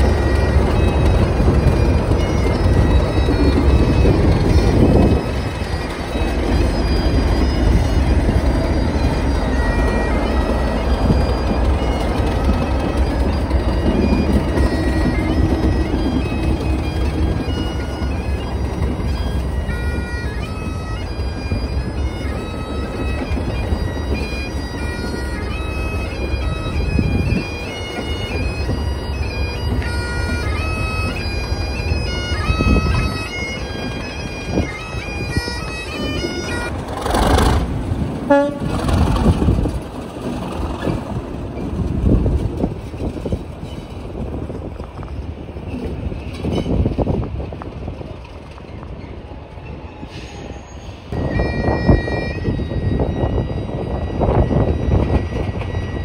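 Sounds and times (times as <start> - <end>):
bagpipes playing: 0.0 - 37.4, 51.1 - 56.0
diesel locomotive engine rumble: 0.0 - 56.0.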